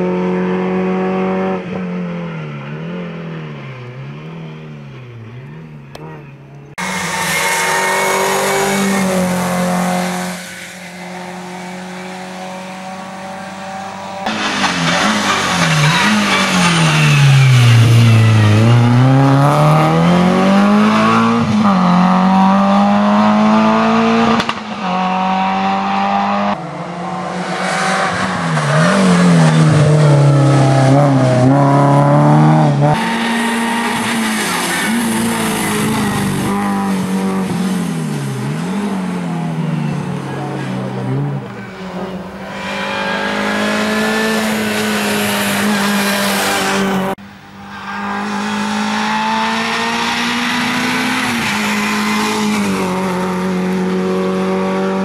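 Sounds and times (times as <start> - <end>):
race car engine revving: 2.6 - 47.2, 47.8 - 55.0.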